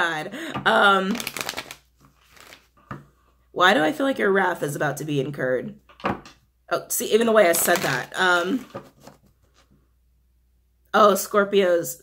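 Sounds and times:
cards rustling: 0:01.1 - 0:02.9, 0:07.5 - 0:09.7.

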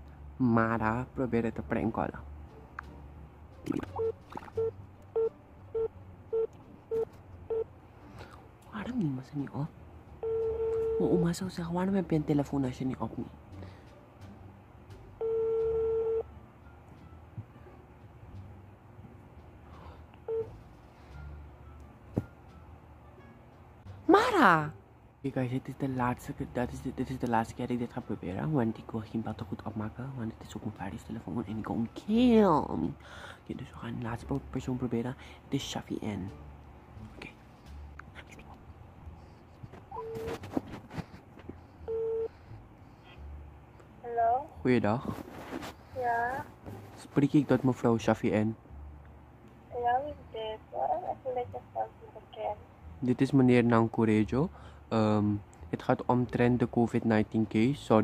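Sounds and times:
telephone line tone: 0:04.0 - 0:07.7, 0:10.2 - 0:11.2, 0:15.2 - 0:16.3, 0:20.3 - 0:20.5, 0:41.9 - 0:42.3.

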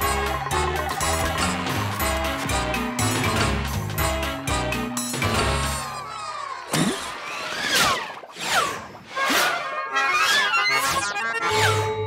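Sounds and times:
cartoon soundtrack music: 0:00.0 - 0:12.0.

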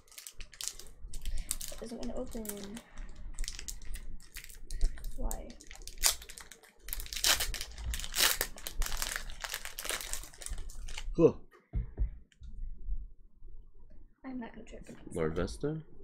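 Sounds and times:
foil wrapper tearing and crinkling: 0:00.0 - 0:11.2.

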